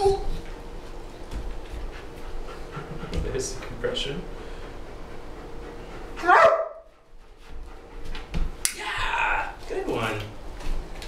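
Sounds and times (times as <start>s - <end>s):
dog barking: 6.2s - 6.9s.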